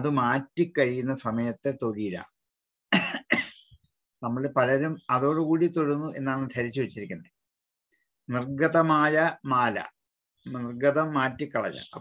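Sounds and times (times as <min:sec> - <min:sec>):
man coughing: 0:02.9 - 0:03.6.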